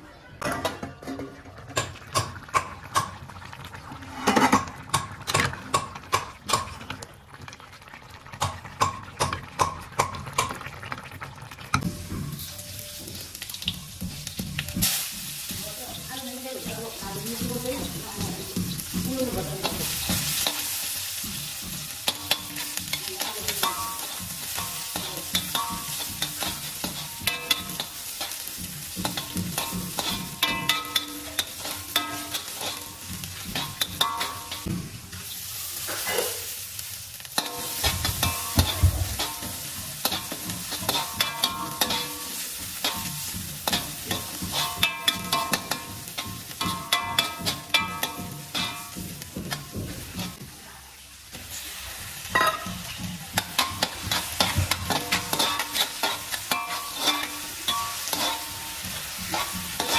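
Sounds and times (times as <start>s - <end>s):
onions sizzling in hot oil: 1.7s - 59.9s
metal spatula scraping pan: 14.2s - 35.0s, 37.3s - 50.4s, 52.3s - 59.9s.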